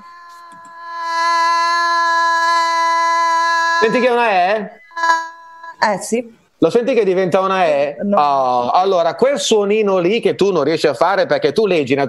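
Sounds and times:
woman holding a long vowel: 0.0 - 6.0
man speaking: 3.8 - 4.8, 5.8 - 12.0.

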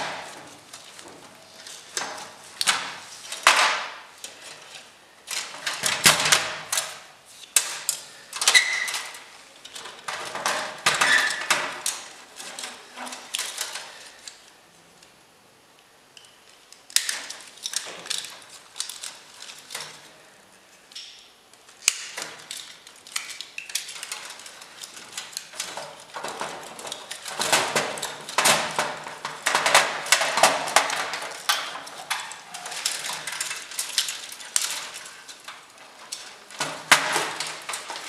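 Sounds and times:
clicks and rattles: 21.8 - 38.0.

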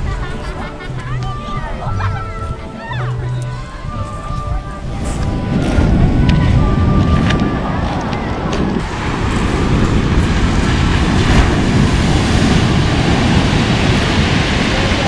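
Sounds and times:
wind buffeting microphone: 0.0 - 15.0
waves breaking on pebbles: 8.7 - 15.0.

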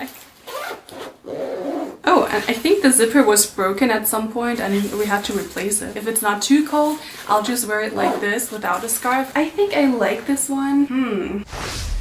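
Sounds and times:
jacket zipper being pulled: 0.4 - 2.0, 7.9 - 8.4.

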